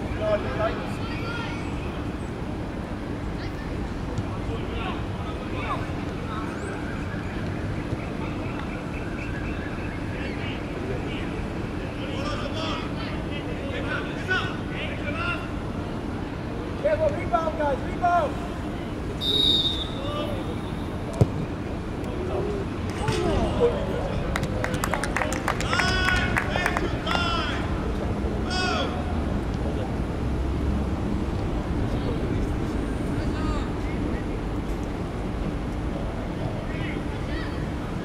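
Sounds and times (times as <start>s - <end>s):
distant voices of footballers calling: 0.0s - 30.4s.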